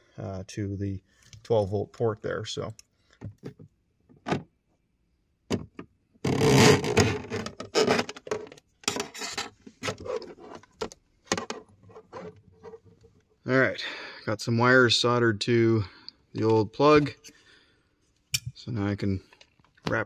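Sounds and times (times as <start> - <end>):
scraping and clicking of wires: 6.3 - 13.3.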